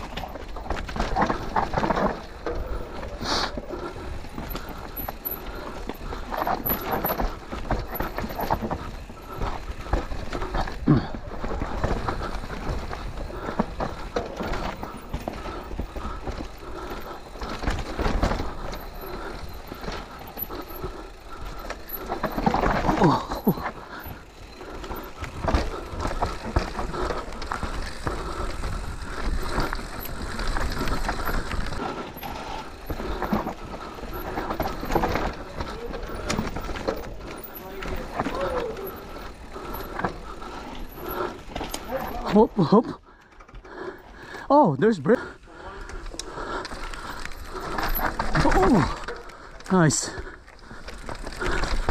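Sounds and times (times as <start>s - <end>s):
bike rattling and knocking: 0.0s - 44.4s, 45.2s - 51.9s
bike tyres crunching over dirt: 0.0s - 51.9s.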